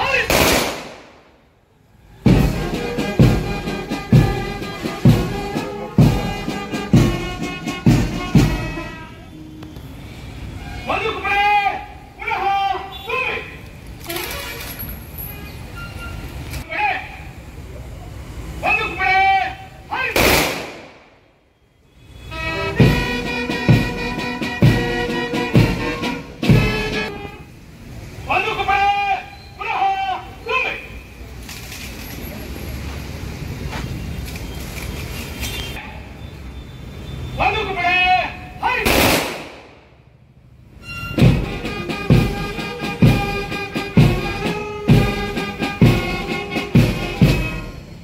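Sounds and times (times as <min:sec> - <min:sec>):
person shouting command: 0:00.0 - 0:00.4, 0:10.8 - 0:13.6, 0:16.6 - 0:17.4, 0:18.6 - 0:20.3, 0:28.3 - 0:30.9, 0:37.4 - 0:39.1
rifle volley: 0:00.2 - 0:01.3, 0:20.1 - 0:21.1, 0:38.8 - 0:39.9.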